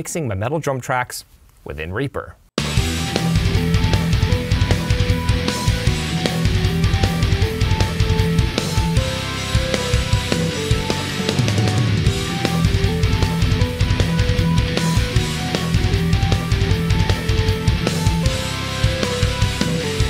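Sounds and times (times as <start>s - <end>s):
heavy metal song: 2.6s - 20.0s.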